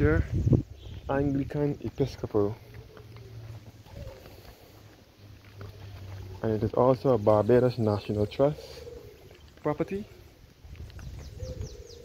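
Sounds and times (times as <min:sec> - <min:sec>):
footsteps on pavement: 0:00.0 - 0:12.0.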